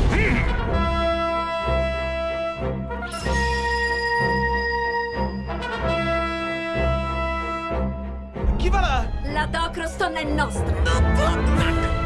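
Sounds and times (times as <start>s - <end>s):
brass section chords: 0.1s - 8.5s.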